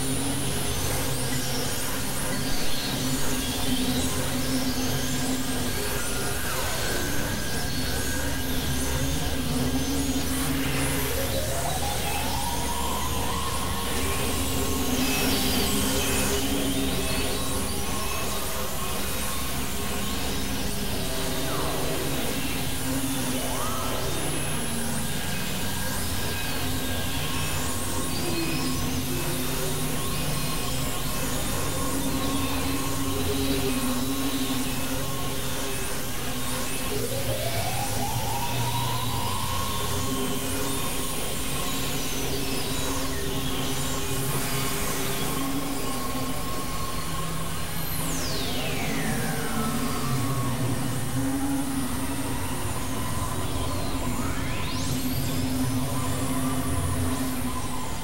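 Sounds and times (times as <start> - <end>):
gliding synth tone: 0.0 - 58.0
noisy synthesizer drone: 0.0 - 58.0.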